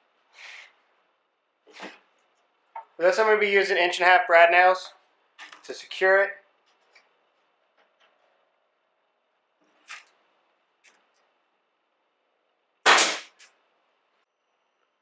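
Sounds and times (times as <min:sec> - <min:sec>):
pneumatic nailer shot: 0:12.8 - 0:13.5.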